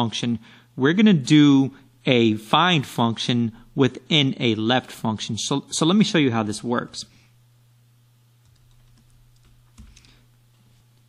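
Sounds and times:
computer keyboard keystrokes: 8.4s - 10.2s.

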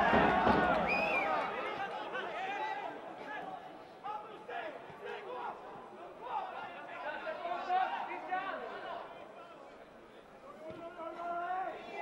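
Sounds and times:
men calling and shouting: 0.0s - 12.0s.

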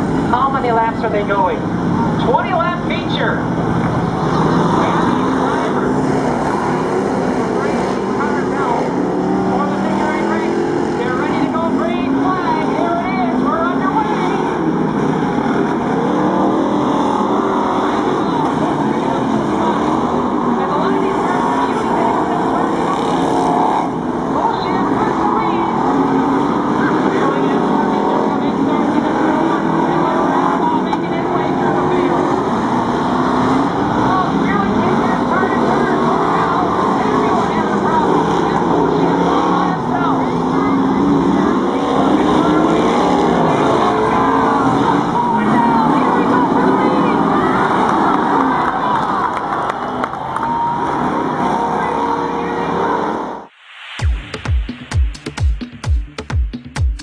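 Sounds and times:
racing car engines: 0.0s - 57.0s.

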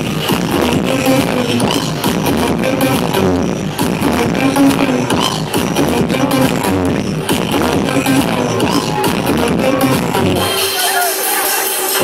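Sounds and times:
loud trance dance music: 0.0s - 12.0s.

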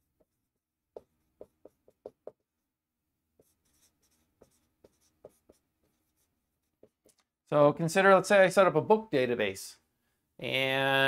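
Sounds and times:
marker writing on whiteboard: 0.0s - 2.6s, 3.2s - 7.4s.

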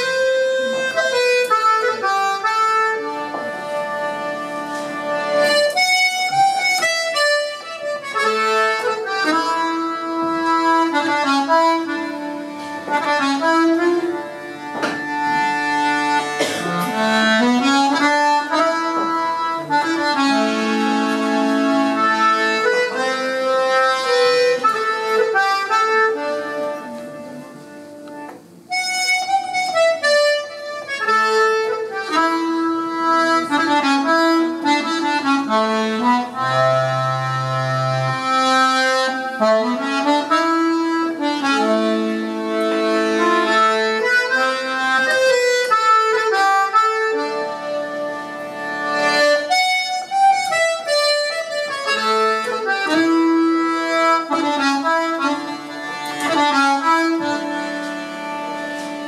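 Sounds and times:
button accordion playing a lament: 0.0s - 59.0s.

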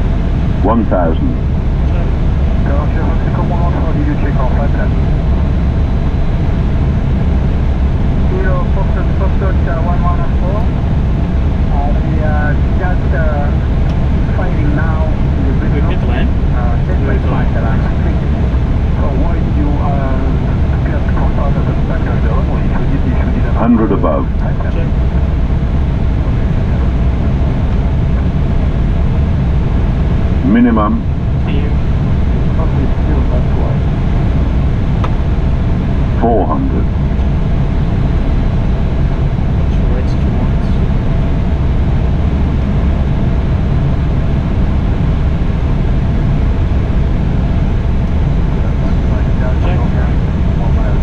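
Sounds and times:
low rumble of airflow and engines: 0.0s - 51.0s
faint voices: 0.6s - 5.0s, 8.2s - 10.7s, 11.7s - 25.1s, 25.9s - 28.8s, 30.4s - 31.8s, 32.4s - 33.8s, 36.2s - 37.2s, 39.6s - 41.0s, 48.4s - 51.0s.

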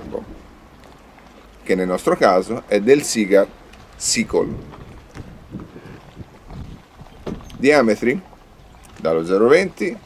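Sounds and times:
wind rumbling on microphone: 0.0s - 1.2s, 3.3s - 10.0s.

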